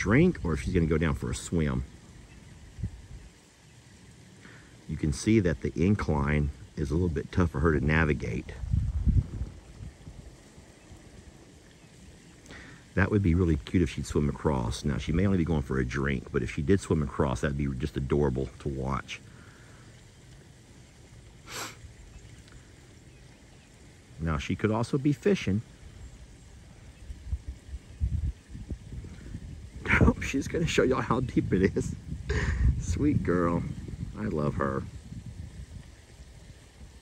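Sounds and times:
light hiss: 0.0 - 37.0
low uneven rumbling: 0.0 - 37.0.

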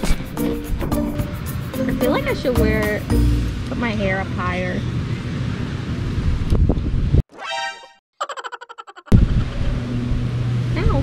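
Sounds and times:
wind buffeting microphone: 5.1 - 7.2, 9.1 - 11.0.

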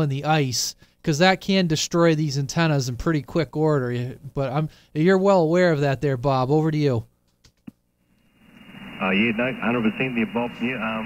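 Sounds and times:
radio receiver hiss: 8.1 - 11.0.

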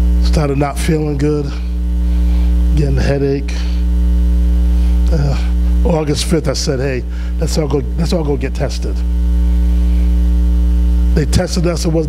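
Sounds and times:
electrical mains hum: 0.0 - 12.0
speech: 0.2 - 1.7, 2.7 - 3.8, 5.1 - 9.0, 11.2 - 12.0.

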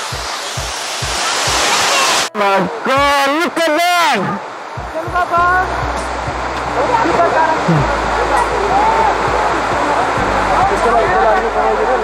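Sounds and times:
waterfall pouring: 0.0 - 12.0
background music with low beat: 4.7 - 12.0.

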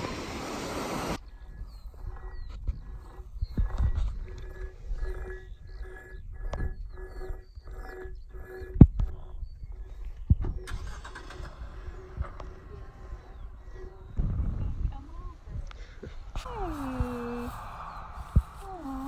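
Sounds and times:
wind buffeting microphone: 0.0 - 19.0
faint pulsing tone: 1.2 - 19.0
wire rope scraping metal post: 2.0 - 14.1.

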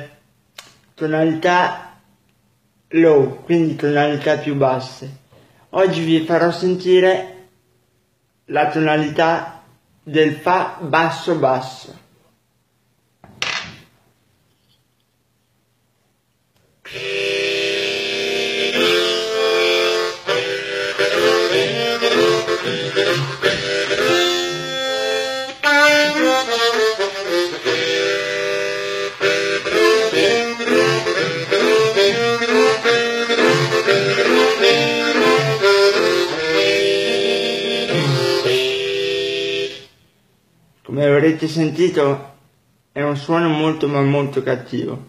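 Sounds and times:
blues harmonica with chords: 16.9 - 40.1.

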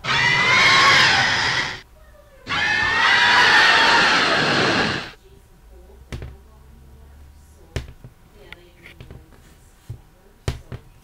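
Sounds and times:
monster roar: 0.0 - 1.8, 2.5 - 5.2.

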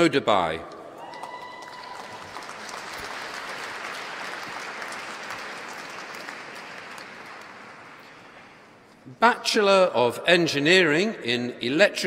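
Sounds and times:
audience applauding: 1.1 - 8.4.

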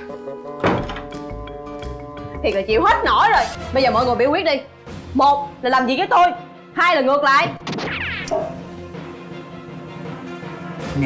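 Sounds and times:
background music sustained chords: 0.0 - 7.3, 8.3 - 11.0
loud thunk: 0.6 - 1.1.

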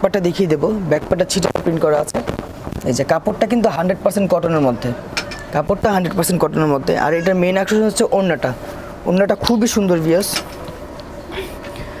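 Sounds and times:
man speaking: 2.9 - 10.4.

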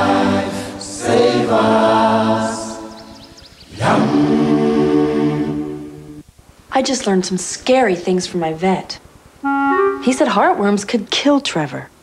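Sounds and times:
group of voices singing a jingle: 0.0 - 6.2.

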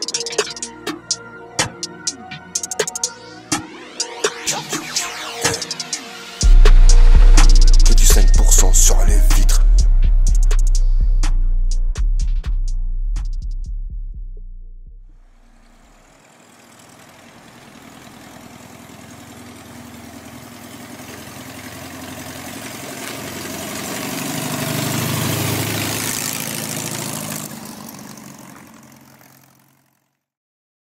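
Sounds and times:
trap beat deep bass: 0.0 - 15.1
car engine running: 5.1 - 30.2.

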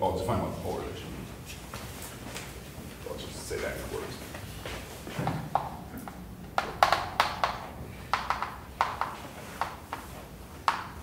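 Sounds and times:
chalk tapping on blackboard: 5.3 - 11.0.

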